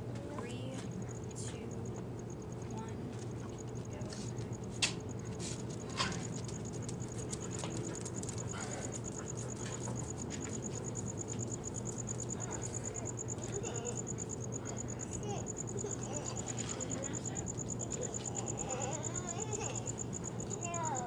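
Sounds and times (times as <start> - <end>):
steady low hum: 0.0 - 21.0
insect chirping: 0.4 - 21.0.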